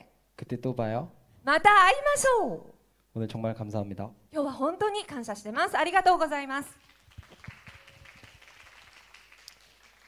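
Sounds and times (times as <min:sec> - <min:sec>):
scattered hand clapping: 0:06.8 - 0:10.0.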